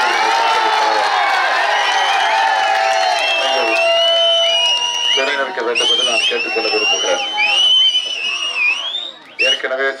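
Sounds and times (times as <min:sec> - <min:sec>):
shrill whistles: 0:01.7 - 0:09.9
man speaking over loudspeaker: 0:03.4 - 0:03.8, 0:05.2 - 0:07.5, 0:09.4 - 0:10.0.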